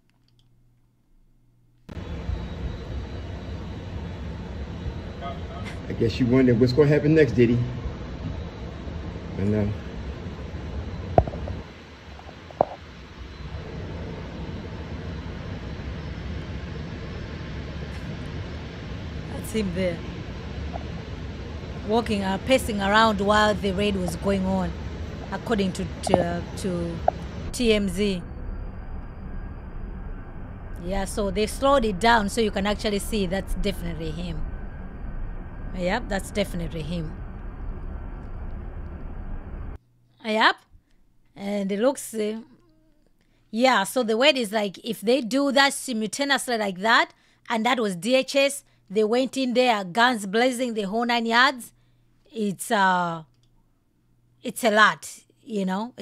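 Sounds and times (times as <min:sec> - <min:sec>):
low outdoor rumble: 0:01.9 - 0:39.9.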